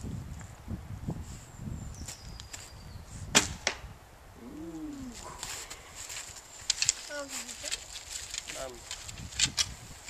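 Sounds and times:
arrow striking foam target: 3.3s - 3.8s.

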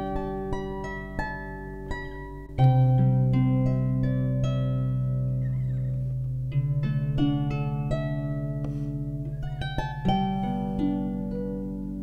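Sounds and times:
harp notes plucked: 0.0s - 12.0s
sustained low harp bass strings: 0.0s - 12.0s.

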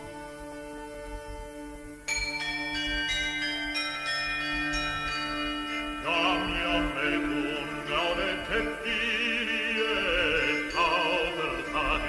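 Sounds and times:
tuned bells struck: 2.1s - 7.1s.

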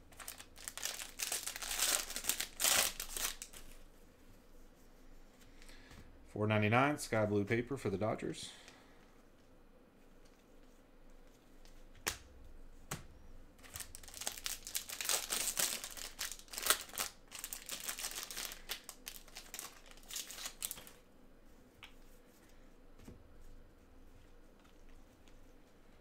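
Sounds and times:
foil wrapper tearing and crinkling: 0.1s - 3.8s, 13.6s - 21.0s.

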